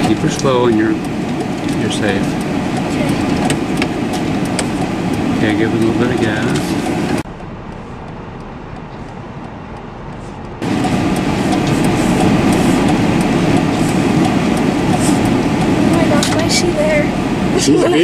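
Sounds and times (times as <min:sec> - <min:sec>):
car engine and road noise: 0:00.0 - 0:18.0.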